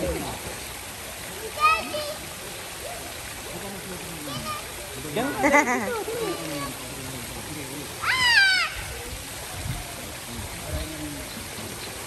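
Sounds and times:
high-pitched cry: 8.0s - 9.0s.

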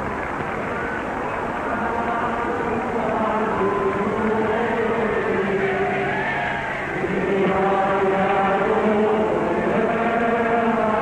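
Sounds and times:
choir singing a slow chant: 1.6s - 11.0s.

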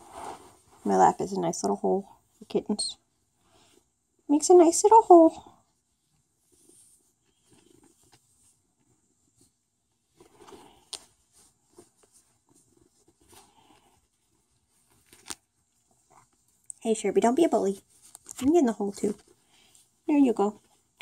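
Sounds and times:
fabric rustling and handling: 0.0s - 4.1s, 4.8s - 21.0s.

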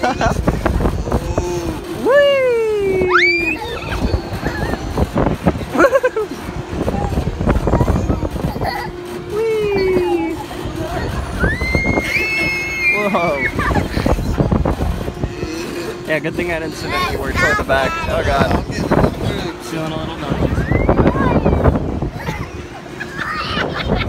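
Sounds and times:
wind on microphone: 0.0s - 22.7s
riders shrieking and screaming: 11.2s - 13.8s.

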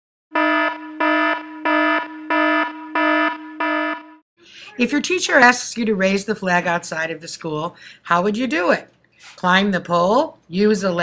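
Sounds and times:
electronic alarm buzzing: 0.3s - 4.2s.

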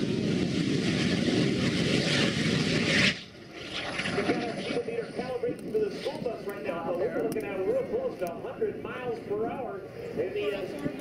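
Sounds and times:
loud jet engine roar: 0.0s - 11.0s.

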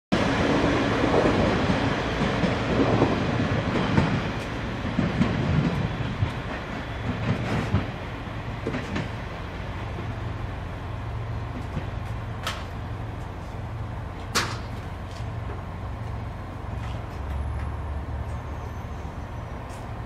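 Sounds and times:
train wheels clattering over rail joints: 0.6s - 10.5s, 11.3s - 18.5s
diesel engine running: 4.3s - 20.0s.

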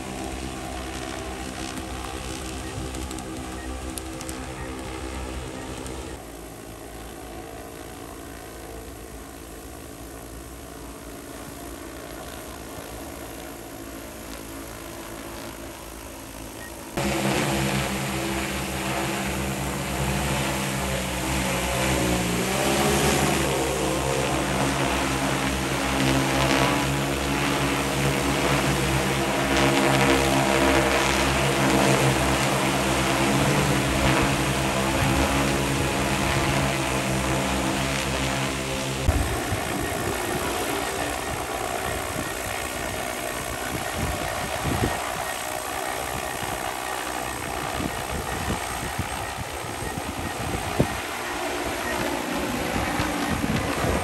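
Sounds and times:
drone rotors humming: 0.0s - 54.0s.

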